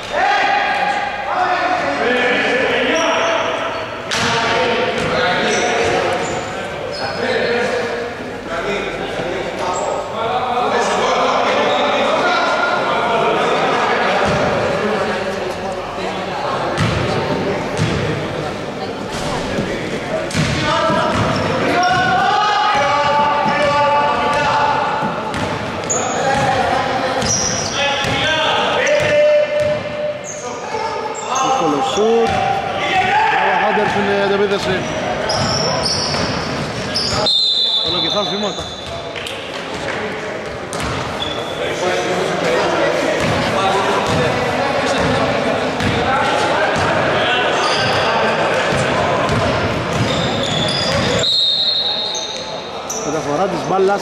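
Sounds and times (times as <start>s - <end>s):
basketball bouncing on wooden floor: 40.7s - 41.0s.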